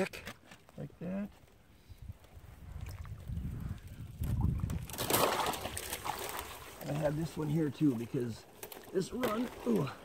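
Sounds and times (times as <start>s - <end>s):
water splash: 4.8s - 7.0s
water sloshing around legs: 4.9s - 10.0s.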